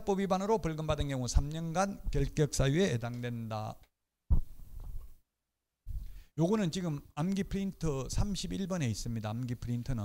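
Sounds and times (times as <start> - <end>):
microphone handling thump: 4.3 - 5.1.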